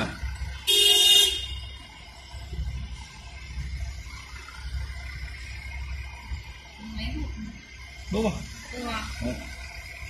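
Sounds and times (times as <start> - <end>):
vehicle engines passing: 0.0 - 10.0
vehicle horn honk: 0.6 - 1.7.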